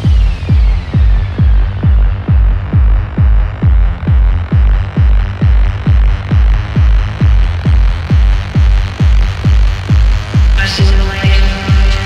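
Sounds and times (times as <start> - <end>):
kick drum: 0.0 - 12.0
low droning bass: 0.0 - 12.0
techno track: 0.0 - 12.0.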